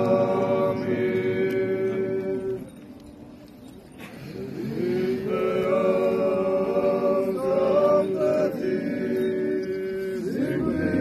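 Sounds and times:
group chanting a hymn: 0.0s - 2.7s, 4.2s - 11.0s.

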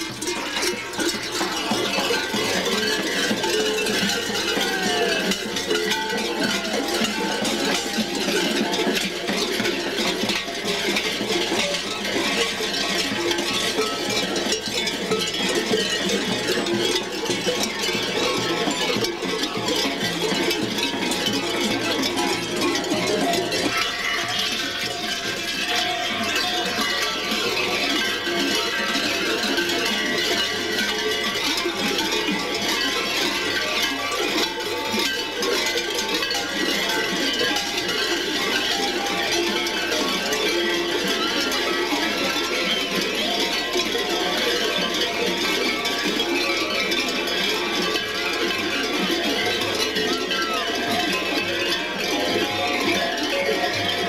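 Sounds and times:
large bells clanging: 0.0s - 53.8s.

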